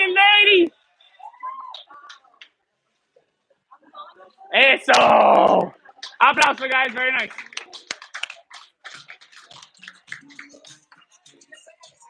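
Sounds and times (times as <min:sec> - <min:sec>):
group clapping: 0:04.9 - 0:12.0.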